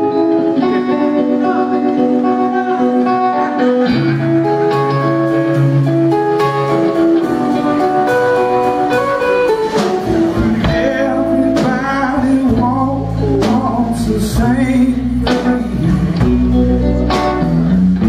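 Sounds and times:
bass guitar: 0.0s - 18.0s
drum kit beat: 0.0s - 18.0s
electric guitar riff: 0.0s - 18.0s.

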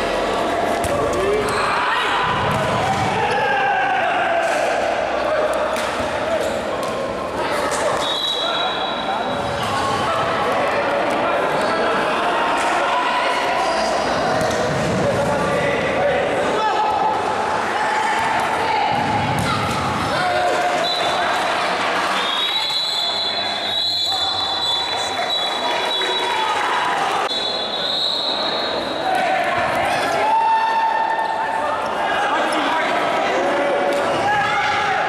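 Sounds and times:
players shouting: 0.8s - 6.7s, 28.4s - 35.0s.

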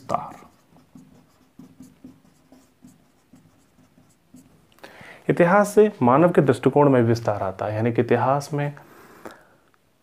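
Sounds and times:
marker pen writing on whiteboard: 0.0s - 4.8s.

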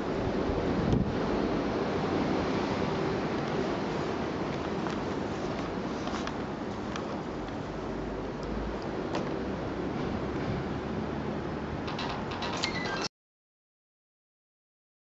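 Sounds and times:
wind buffeting microphone: 0.0s - 5.8s.

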